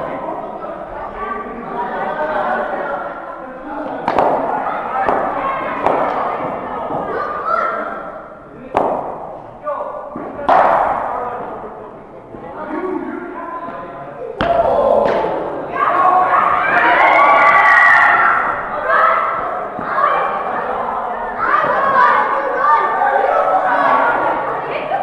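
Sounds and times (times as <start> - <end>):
players and onlookers calling: 1.8 - 11.8, 14.2 - 25.0
cricket bat striking ball: 4.1 - 6.2, 8.8 - 9.4, 10.2 - 11.2.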